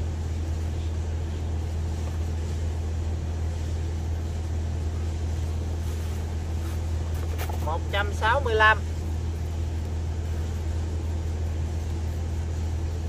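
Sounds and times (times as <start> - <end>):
low motor hum: 0.0 - 13.0.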